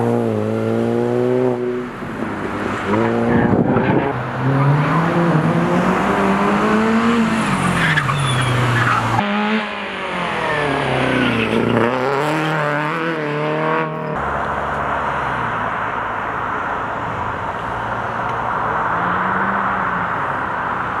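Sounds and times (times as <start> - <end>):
race car engine revving: 0.0 - 15.6
tyres squealing: 7.4 - 9.2.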